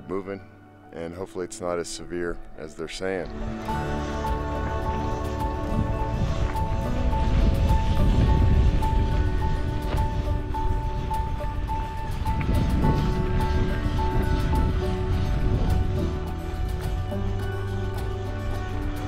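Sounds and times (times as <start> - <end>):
low rumbling noise: 3.2 - 19.0.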